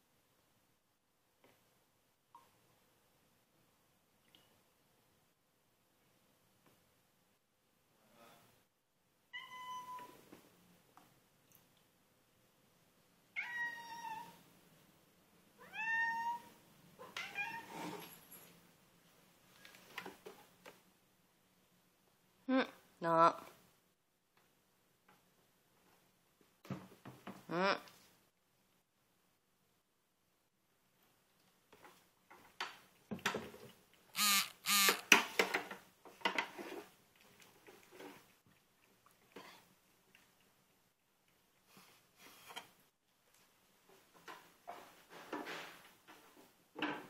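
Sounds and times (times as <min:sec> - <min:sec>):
cat meowing: 0:09.3 - 0:10.2, 0:13.4 - 0:14.4, 0:15.6 - 0:17.7.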